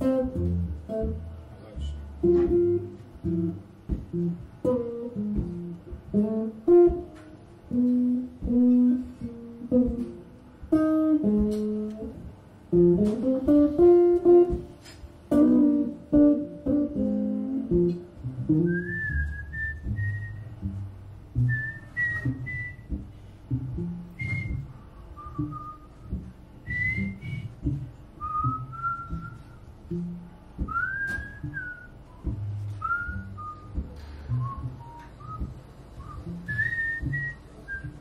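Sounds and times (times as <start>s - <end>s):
electric guitar picking: 0.0s - 38.0s
man whistling a melody: 15.5s - 20.8s, 21.4s - 23.2s, 23.8s - 30.0s, 30.6s - 38.0s.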